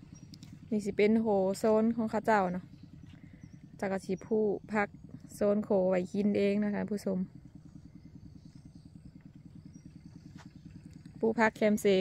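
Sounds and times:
small engine puttering: 0:00.0 - 0:12.0.

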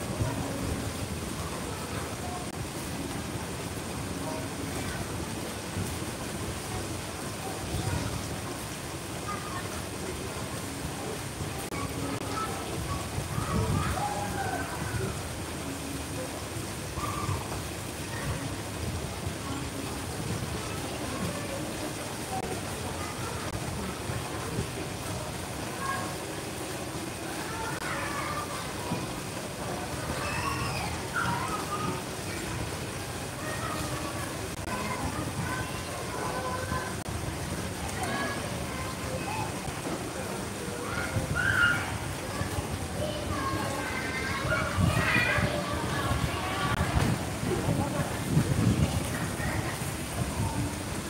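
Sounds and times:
water rushing in a pond: 0:00.0 - 0:51.0.

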